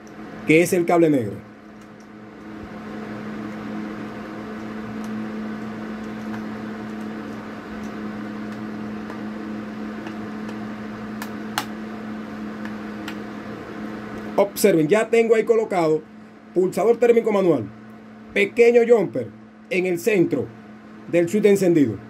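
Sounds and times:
motor humming: 0:00.0 - 0:14.8.

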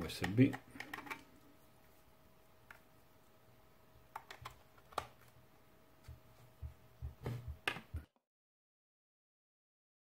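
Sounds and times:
faint steady hum: 0:00.0 - 0:08.1.

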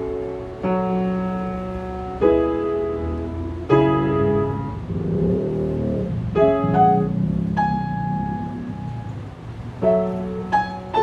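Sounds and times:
grand piano playing: 0:00.0 - 0:11.0.

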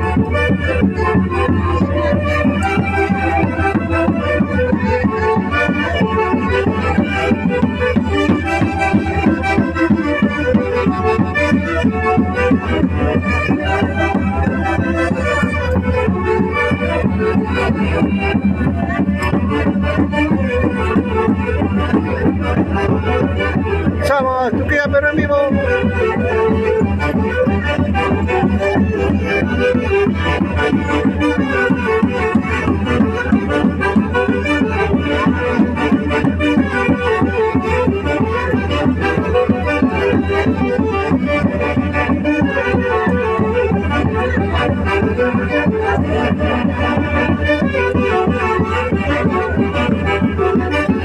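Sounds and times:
festive band music: 0:00.0 - 0:51.0.

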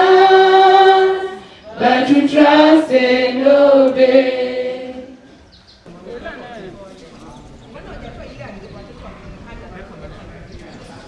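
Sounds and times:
overlapping indistinct voices: 0:00.0 - 0:06.0.

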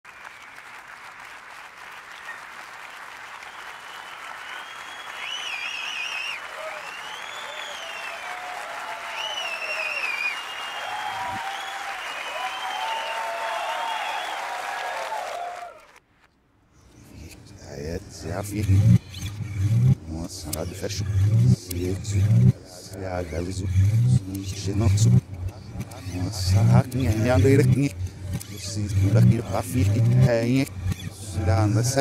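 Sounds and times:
reversed applause and cheering: 0:00.0 - 0:16.1, 0:18.1 - 0:32.0.

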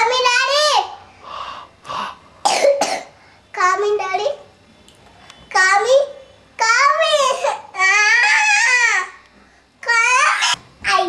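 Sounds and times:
child coughing: 0:02.4 - 0:03.2, 0:07.2 - 0:07.7
child drawn-out voiced sound: 0:05.5 - 0:09.2, 0:09.8 - 0:11.0.

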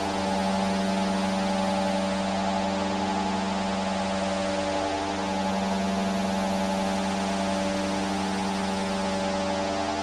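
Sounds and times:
ambient electronic drone music: 0:00.0 - 0:10.0.

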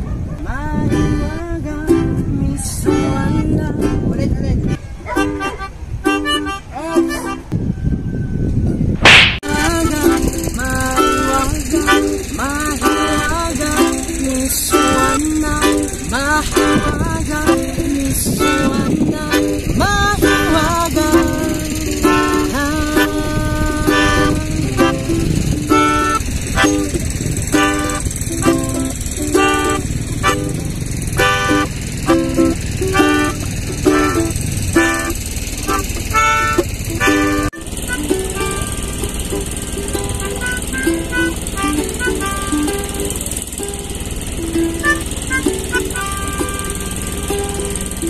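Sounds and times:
strummed ukulele chords: 0:00.5 - 0:07.5, 0:09.0 - 0:48.0
melodica notes: 0:04.6 - 0:07.5, 0:09.4 - 0:48.0.

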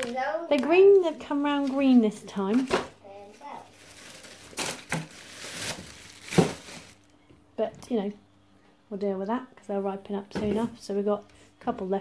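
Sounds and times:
packaging crinkling and rustling: 0:00.0 - 0:07.2.

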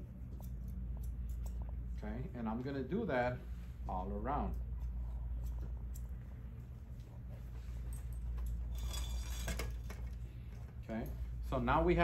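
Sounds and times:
shears snipping hair: 0:00.0 - 0:01.9, 0:03.9 - 0:06.8
steady low hum: 0:00.0 - 0:12.0.

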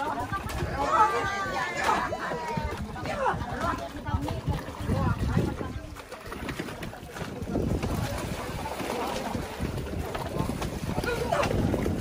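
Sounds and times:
child kicking in water: 0:00.0 - 0:12.0
sea water lapping and splashing: 0:00.0 - 0:12.0
wind rumbling on microphone: 0:00.0 - 0:12.0.

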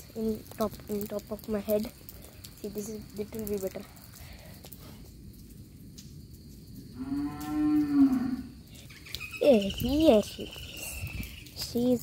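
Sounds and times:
cow mooing: 0:07.0 - 0:08.6.

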